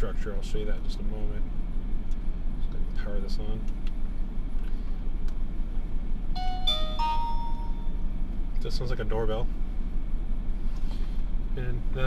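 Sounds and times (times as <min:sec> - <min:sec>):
electronic power-on chime: 0:06.4 - 0:08.0.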